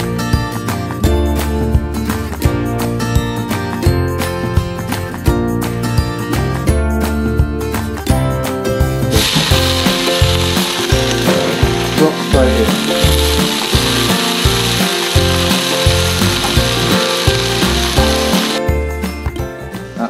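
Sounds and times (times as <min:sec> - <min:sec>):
background music: 0:00.0 - 0:20.0
cabbage sizzling in wok: 0:09.1 - 0:18.6.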